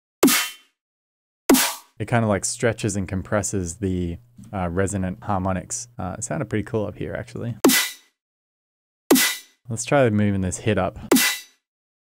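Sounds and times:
snare drum hits with metallic ring: 1.5s - 1.9s.

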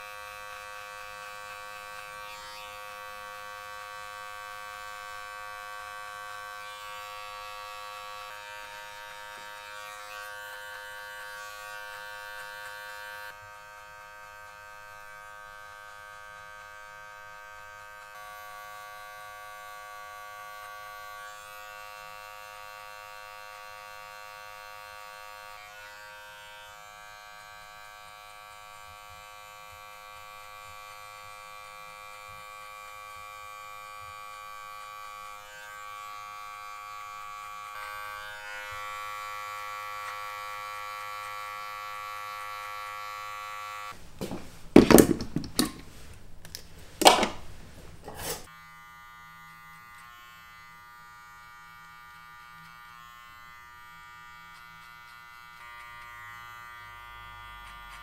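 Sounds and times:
electric hair clipper buzzing: 0.0s - 45.8s, 48.1s - 58.0s.

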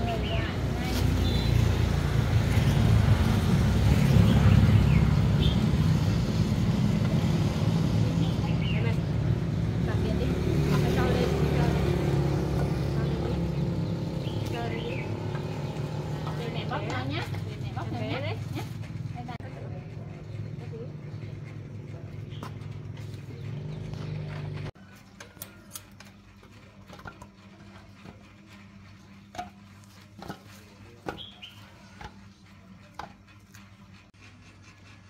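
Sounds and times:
voices: 0.0s - 35.0s.

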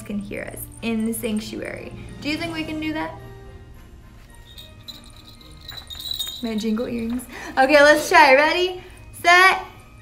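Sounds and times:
small bells tinkling: 0.0s - 2.0s, 4.2s - 7.5s.

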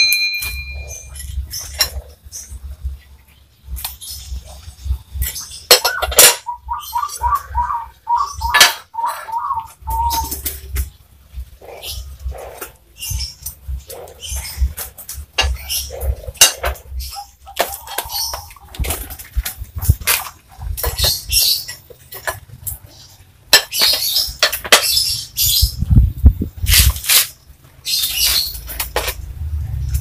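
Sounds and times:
animal calling repeated notes: 5.8s - 10.5s.

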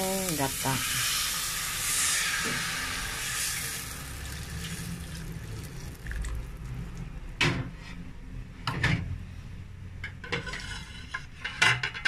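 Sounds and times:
liquid sizzling in hot pan: 0.0s - 6.7s.

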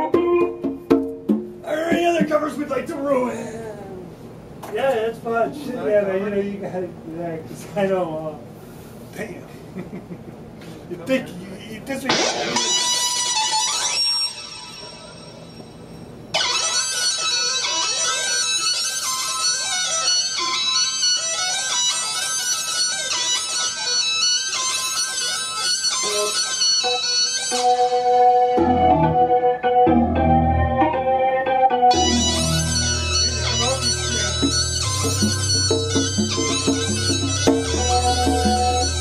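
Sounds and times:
low rhythmic thumps: 0.0s - 2.6s, 28.4s - 31.1s, 31.9s - 39.0s
steady held tones: 11.9s - 39.0s
sliding electronic synthesizer tones: 22.2s - 39.0s.

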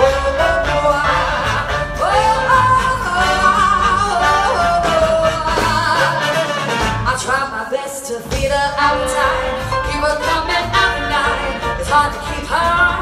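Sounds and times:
live band playing: 0.0s - 13.0s
person singing with vibrato: 0.0s - 13.0s.

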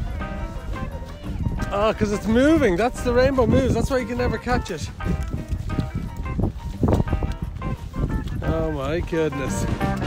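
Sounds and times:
background music with held notes: 0.0s - 10.0s
uneven low thuds: 4.4s - 10.0s.

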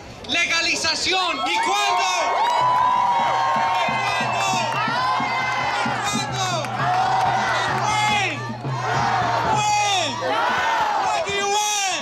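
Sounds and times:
crowd cheering and whooping: 1.3s - 11.3s
many voices shouting: 1.4s - 12.0s.

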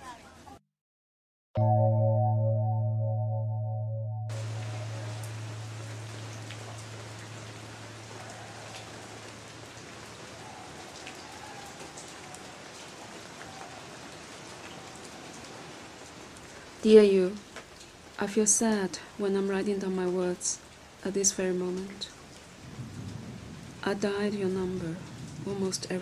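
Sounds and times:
low held musical tone: 1.6s - 8.1s
steady rain falling: 4.3s - 26.0s.

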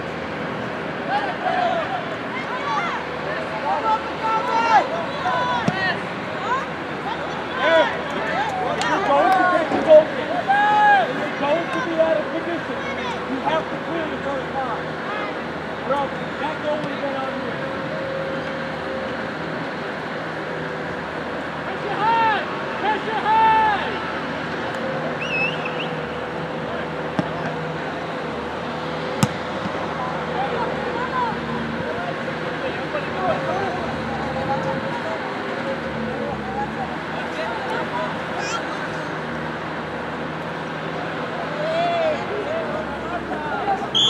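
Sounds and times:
distant shouting voices: 0.9s - 44.0s.

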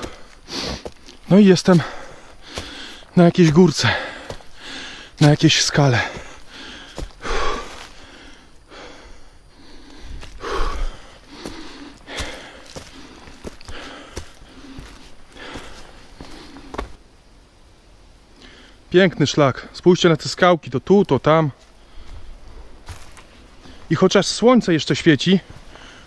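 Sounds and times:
man breathing hard: 0.0s - 5.2s, 5.9s - 17.0s, 21.7s - 22.6s, 25.6s - 26.0s
footsteps in dry leaves: 5.2s - 8.1s, 10.2s - 17.0s, 22.0s - 23.9s.

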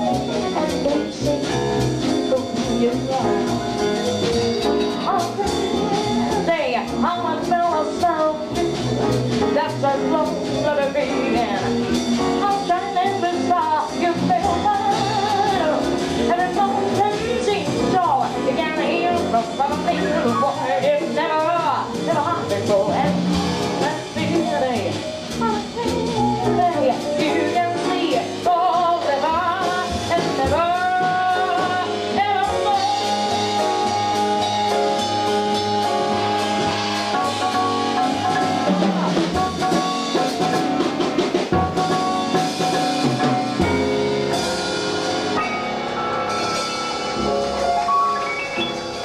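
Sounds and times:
woman singing jazz: 0.0s - 45.3s
bass: 0.0s - 49.0s
drums: 0.0s - 49.0s
piano: 0.0s - 49.0s
vibraphone: 45.4s - 49.0s.

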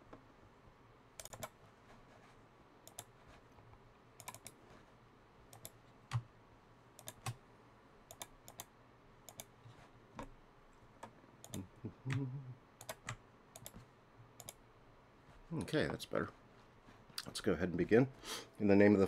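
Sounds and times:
computer keys clicking: 1.2s - 1.6s, 2.8s - 3.1s, 4.2s - 4.6s, 5.5s - 6.3s, 7.0s - 7.4s, 8.1s - 9.6s, 11.0s - 12.2s, 12.8s - 13.8s, 14.4s - 14.6s.

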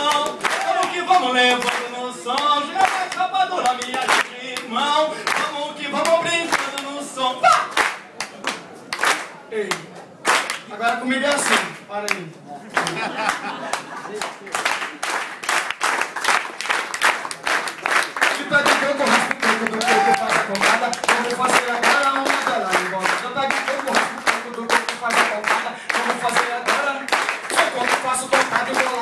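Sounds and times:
audience clapping in rhythm: 0.0s - 29.0s.

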